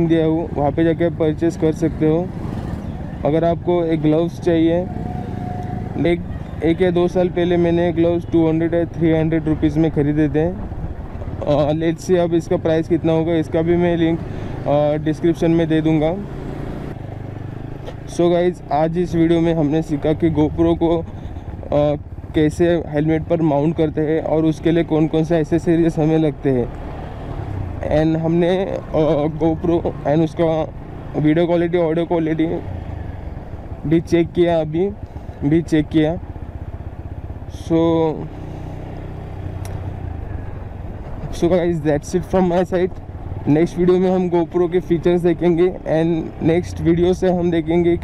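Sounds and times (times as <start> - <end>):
motorcycle engine running: 0.0 - 48.0.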